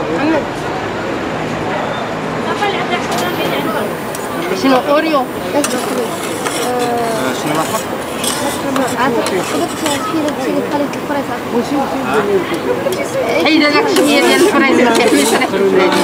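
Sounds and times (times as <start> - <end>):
people talking: 0.0 - 16.0
metal spatulas scraping steel plate: 3.1 - 10.9, 12.9 - 16.0.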